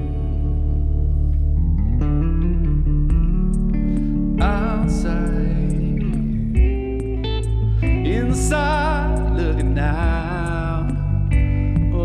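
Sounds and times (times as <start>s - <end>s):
bass line: 0.0s - 12.0s
electric guitar melody: 0.0s - 12.0s.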